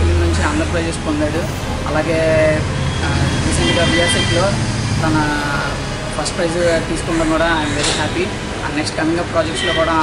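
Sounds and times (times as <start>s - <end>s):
low rumble of road traffic: 0.0s - 10.0s
man talking: 0.0s - 10.0s.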